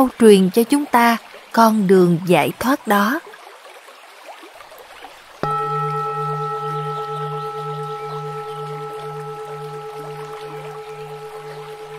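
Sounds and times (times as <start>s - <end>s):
struck bell ringing: 5.4s - 11.9s.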